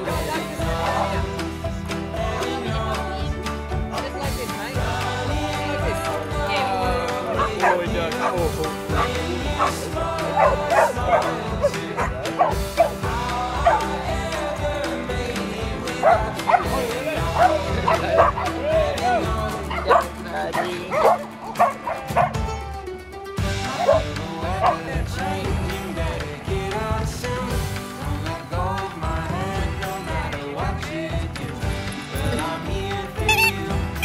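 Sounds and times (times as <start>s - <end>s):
background music: 0.0s - 34.0s
dogs barking and yipping: 7.2s - 14.3s, 15.9s - 22.8s, 23.6s - 25.0s, 31.9s - 34.0s.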